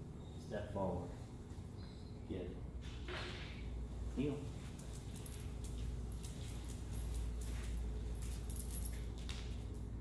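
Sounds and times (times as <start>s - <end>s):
low room hum: 0.0s - 10.0s
light clicks and steps: 4.4s - 9.9s
chain collar jingling: 4.6s - 9.9s.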